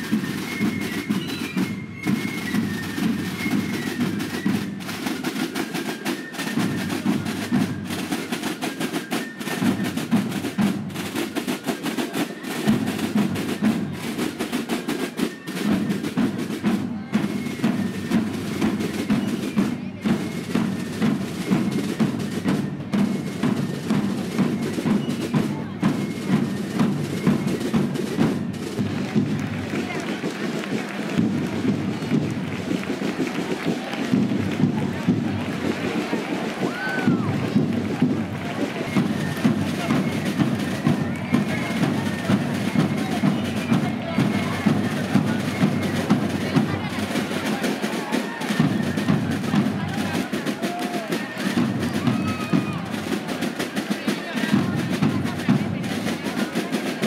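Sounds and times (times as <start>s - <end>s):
massed snare drums marching: 0.0s - 57.0s.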